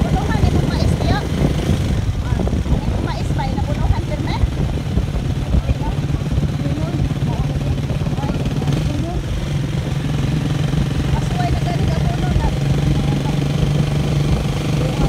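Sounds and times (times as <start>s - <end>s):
road rumble: 0.0s - 15.0s
small motorcycle engine running: 0.0s - 15.0s.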